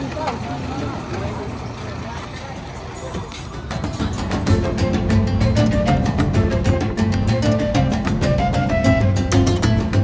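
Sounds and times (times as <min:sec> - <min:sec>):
people talking: 0:00.0 - 0:04.8.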